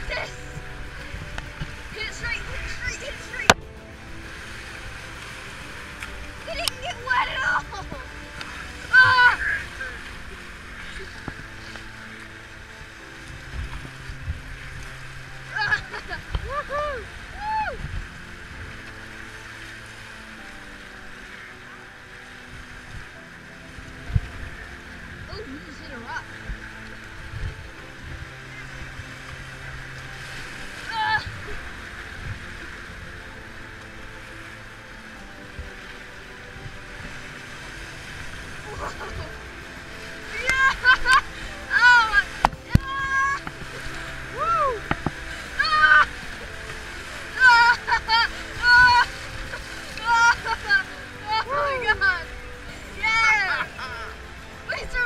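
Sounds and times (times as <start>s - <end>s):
whitewater rapids rushing: 0.0s - 55.0s
people shouting and whooping: 8.9s - 10.0s, 15.5s - 17.9s, 40.2s - 46.5s, 47.3s - 52.3s.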